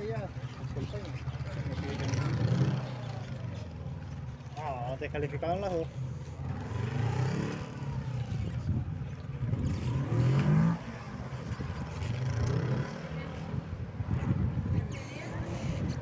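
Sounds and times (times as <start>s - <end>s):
motorcycle engine revving: 0.8s - 3.8s, 6.4s - 13.6s.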